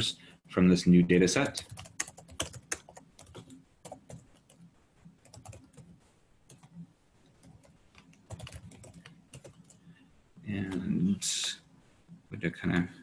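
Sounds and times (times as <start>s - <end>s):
person speaking: 0.0s - 2.0s, 10.4s - 13.0s.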